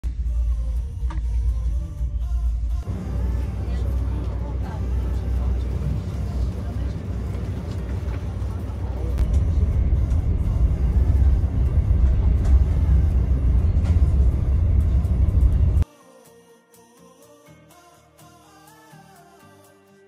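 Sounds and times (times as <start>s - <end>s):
train rumble inside coach: 0.0s - 15.8s.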